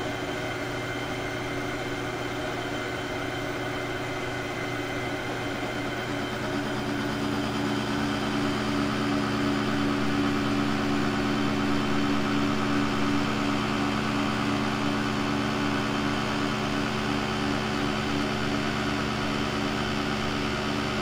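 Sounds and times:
machine hum: 0:00.0 - 0:21.0.

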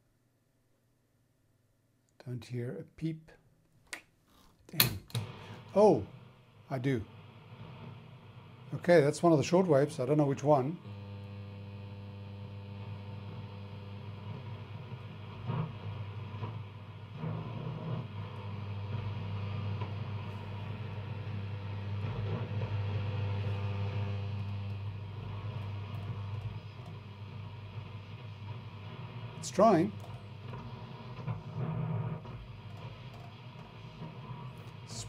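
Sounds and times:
faint radio signal snatches: 0:04.7 - 0:11.9, 0:12.6 - 0:35.0
radio static and hiss: 0:04.8 - 0:35.0
steady low hum: 0:05.2 - 0:35.0.

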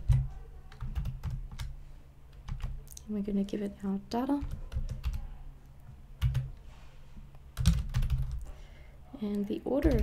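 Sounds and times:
typing on computer keyboard: 0:00.0 - 0:01.7, 0:02.3 - 0:02.8, 0:04.4 - 0:05.2, 0:06.2 - 0:06.5, 0:07.6 - 0:08.4.

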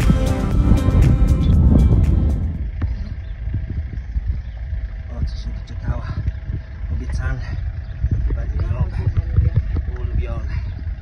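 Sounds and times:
background music: 0:00.0 - 0:02.6
wind buffeting microphone: 0:00.0 - 0:11.0.

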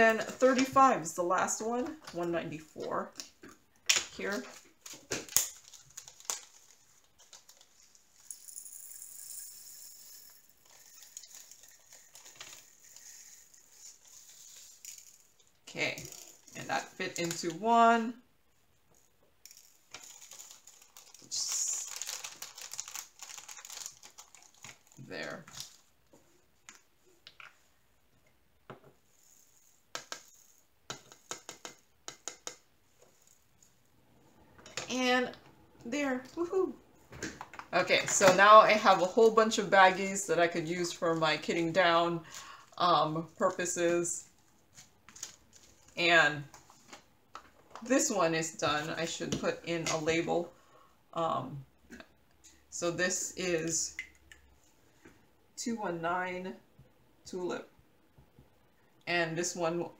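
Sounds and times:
plastic bag crinkling: 0:04.3 - 0:08.3, 0:10.6 - 0:16.6, 0:19.5 - 0:25.9.

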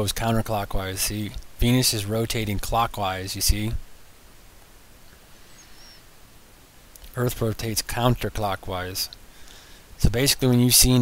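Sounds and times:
microphone noise hiss: 0:00.0 - 0:11.0
faint high chirps: 0:05.0 - 0:06.2.

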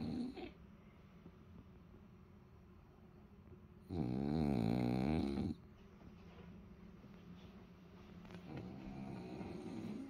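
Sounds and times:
dog snore-like groan: 0:03.9 - 0:05.6, 0:08.6 - 0:10.0.

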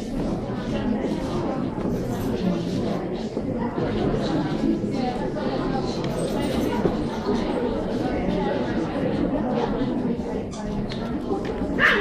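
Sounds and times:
murmur of chatter: 0:00.0 - 0:12.0.

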